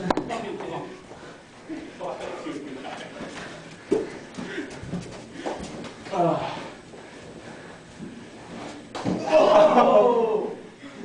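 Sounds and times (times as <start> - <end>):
men calling out: 9.2 - 10.7.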